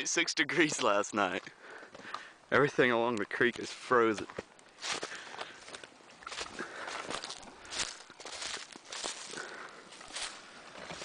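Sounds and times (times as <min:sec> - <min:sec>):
footsteps on frozen ground and leaves: 0:03.4 - 0:11.0.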